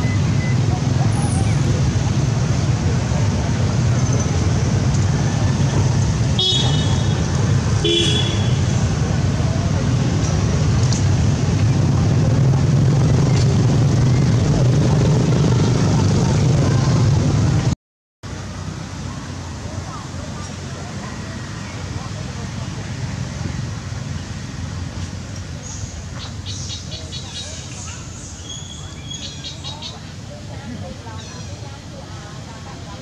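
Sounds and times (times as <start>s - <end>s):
loud low rumble: 7.1s - 17.8s.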